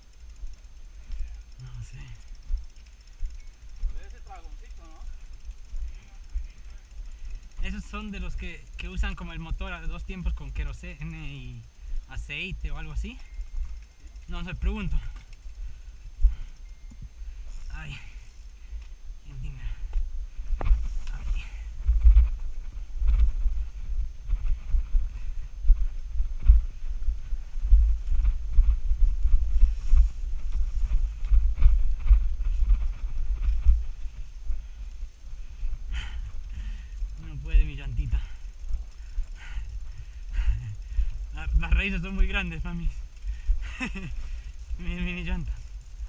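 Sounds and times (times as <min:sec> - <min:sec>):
bicycle rattling and knocking: 0:00.0 - 0:46.0
low rumble of wind: 0:00.0 - 0:46.0.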